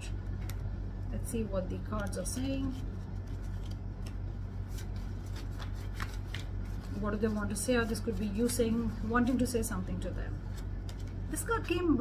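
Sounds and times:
cards being shuffled: 0.1 - 0.8, 1.9 - 11.9.

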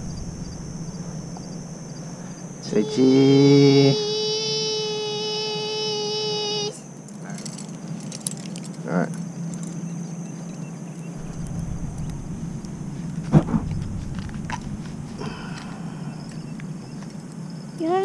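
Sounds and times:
thin high steady tone: 0.0 - 6.8
sharp knock: 11.2 - 15.9
child saying cheese: 17.8 - 18.0.

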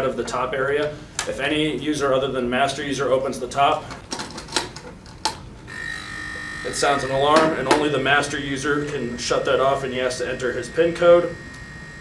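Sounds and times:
electronic alarm tone: 5.7 - 12.0.

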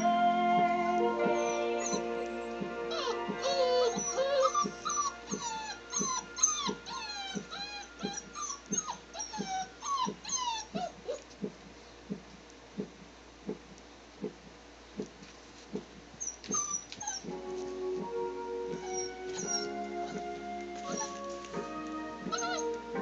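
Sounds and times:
music: 0.0 - 9.8, 17.2 - 23.0
puppies whining: 0.0 - 11.4, 16.2 - 23.0.

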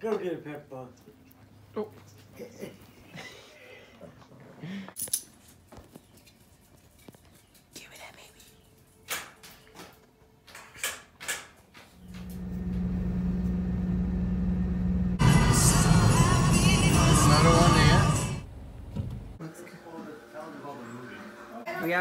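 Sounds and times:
steady low hum: 12.0 - 19.4.

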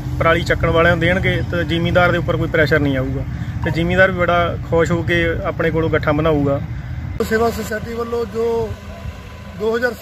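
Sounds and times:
tractor engine running: 0.0 - 10.0
men talking: 0.1 - 10.0.

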